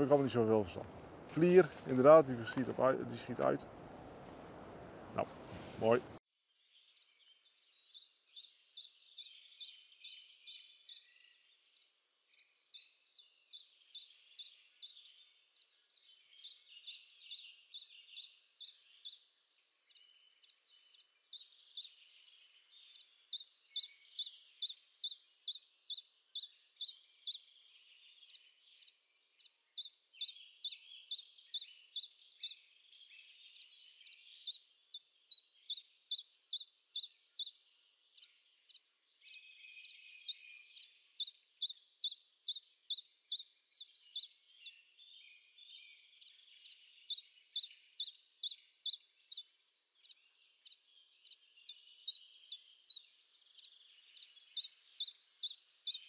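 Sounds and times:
songbird singing: 0:00.0 - 0:56.0
faint bird twittering: 0:12.7 - 0:56.0.

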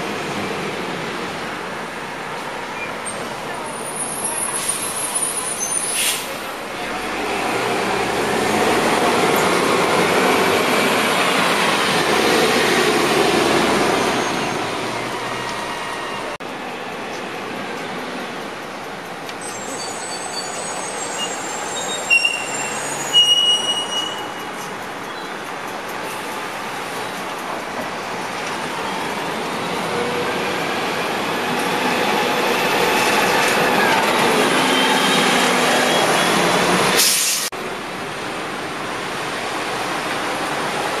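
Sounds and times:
bus passing by: 0:00.0 - 0:41.0
street traffic: 0:00.0 - 0:41.0
short high-pitched squeals: 0:19.4 - 0:24.5.

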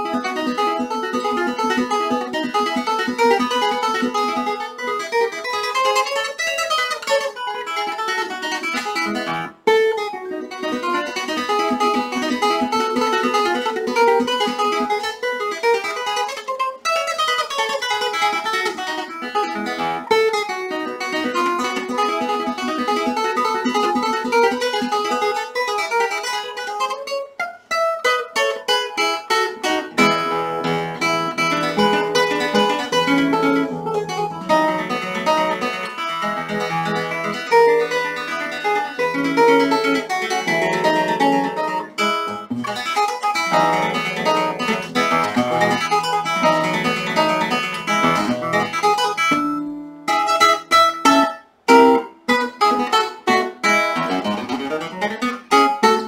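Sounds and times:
classical guitar fingerstyle: 0:00.0 - 0:56.0.

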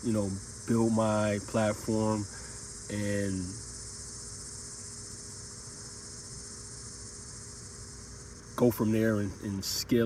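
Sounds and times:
insects chirping: 0:00.0 - 0:10.0.

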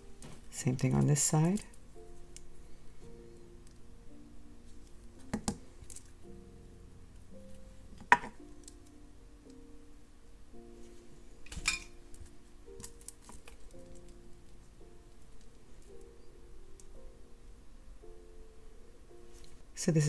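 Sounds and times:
soft background music: 0:00.0 - 0:20.0.

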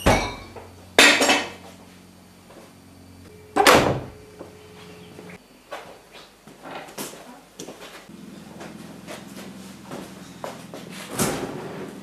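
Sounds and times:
fridge door shutting: 0:03.6 - 0:04.3, 0:11.0 - 0:12.0.

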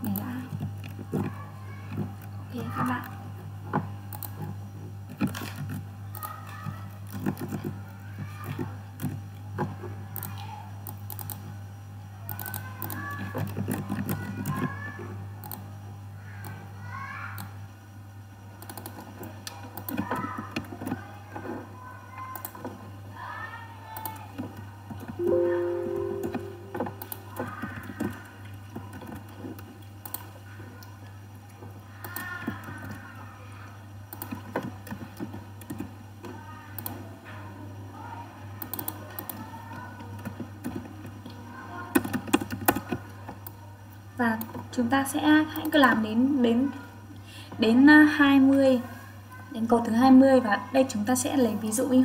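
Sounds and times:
keyboard typing: 0:10.1 - 0:11.5, 0:12.3 - 0:14.8, 0:18.6 - 0:21.0, 0:25.2 - 0:29.2
faint background music: 0:18.6 - 0:29.1
brief electronic tone: 0:25.2 - 0:27.3.

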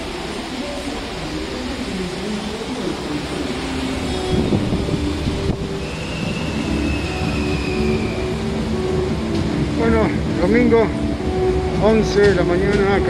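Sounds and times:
train rumbling in tunnel: 0:00.0 - 0:13.0
high train squeal: 0:03.2 - 0:09.6.

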